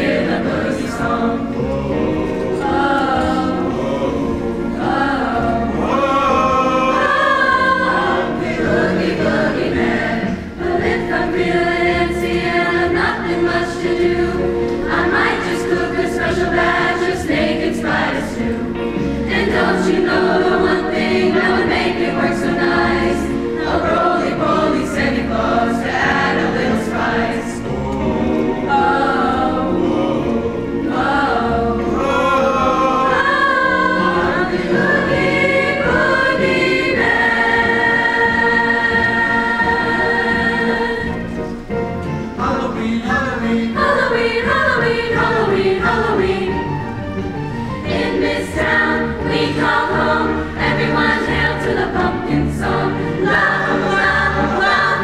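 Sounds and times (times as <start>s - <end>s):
choir singing in harmony: 0.0s - 55.0s.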